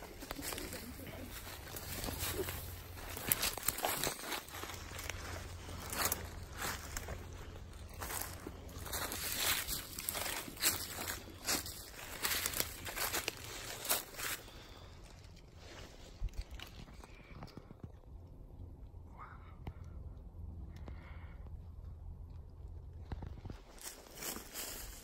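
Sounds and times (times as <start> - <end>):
footsteps crunching through dry leaves: 0.0 - 16.7, 23.5 - 25.0
pine boughs brushing: 0.0 - 17.3, 23.5 - 25.0.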